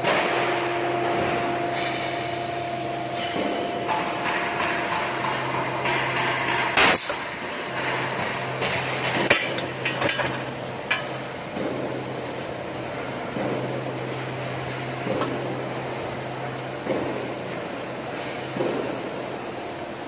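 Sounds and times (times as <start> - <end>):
high steady machine tone: 0.0 - 20.0
roll forming machine humming: 0.0 - 20.0.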